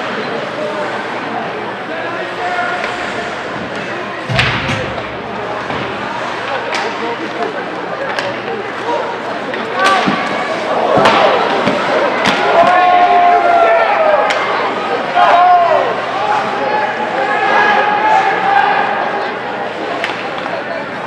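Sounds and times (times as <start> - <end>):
hockey sticks and puck clacking: 9.4 - 12.9, 19.9 - 20.6.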